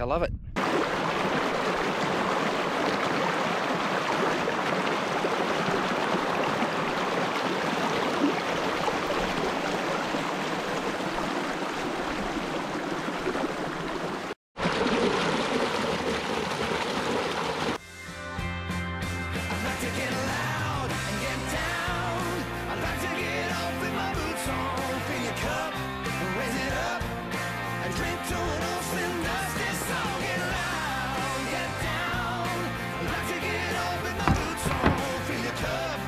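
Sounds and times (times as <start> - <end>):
creek rushing over rocks: 0.6 - 17.8, 33.7 - 36.0.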